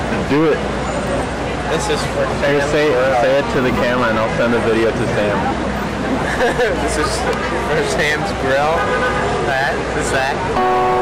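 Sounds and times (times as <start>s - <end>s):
city street traffic rumble: 0.0s - 11.0s.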